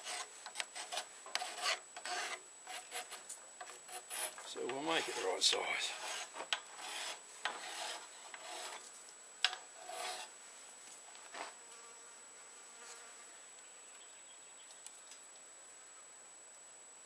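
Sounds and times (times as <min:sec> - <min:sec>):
file scraping metal: 0:00.0 - 0:08.9, 0:09.8 - 0:10.3.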